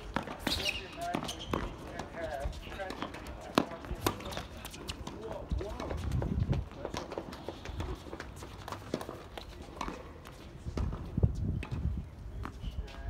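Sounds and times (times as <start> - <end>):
racket hitting tennis ball: 0.0 - 4.4
tennis ball bouncing: 0.0 - 6.1, 6.8 - 12.6.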